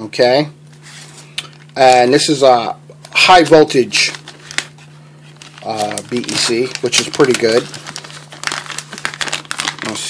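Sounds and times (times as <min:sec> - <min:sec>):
plastic bag crinkling: 0:03.8 - 0:10.0.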